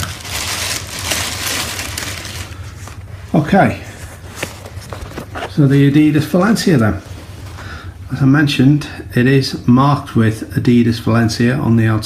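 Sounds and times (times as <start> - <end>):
tissue paper rustling and crinkling: 0.0 - 5.8.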